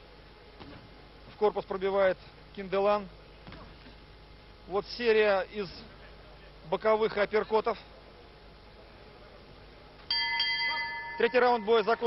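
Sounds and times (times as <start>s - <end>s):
boxing ring bell ringing: 10.1s - 12.0s.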